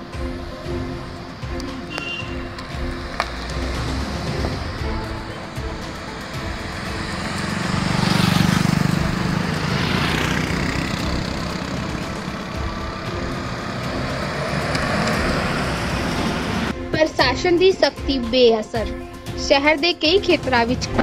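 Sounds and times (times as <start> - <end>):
cars passing on road: 0.0 - 17.9.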